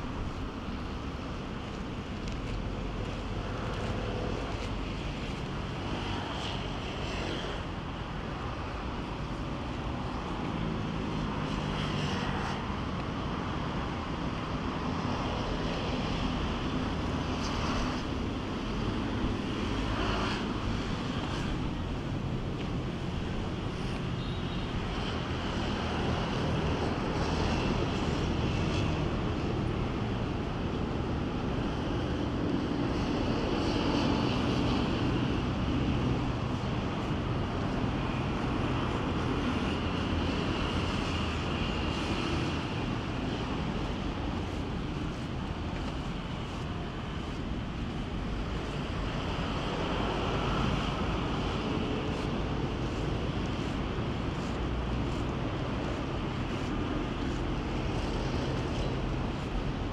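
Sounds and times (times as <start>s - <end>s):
low engine drone: 0.0s - 6.7s
outdoor noise: 0.0s - 59.9s.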